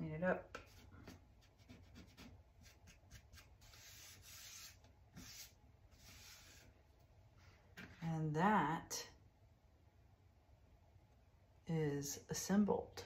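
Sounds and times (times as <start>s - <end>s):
hands brushing wooden tray: 0.6s - 6.8s.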